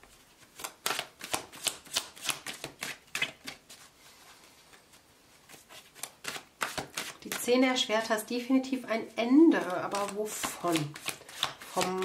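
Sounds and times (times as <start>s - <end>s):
cards being shuffled: 0.0s - 4.0s, 4.6s - 7.5s, 9.5s - 12.0s.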